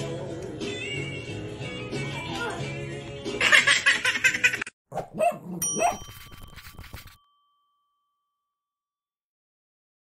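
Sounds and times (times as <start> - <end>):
cartoon dog barking: 4.9 - 6.0
bell ding ringing: 5.6 - 8.7.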